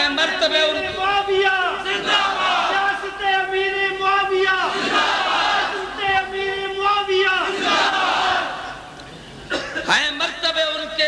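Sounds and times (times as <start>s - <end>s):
crowd shouting in unison: 1.8s - 2.9s, 4.6s - 5.9s, 7.4s - 8.9s.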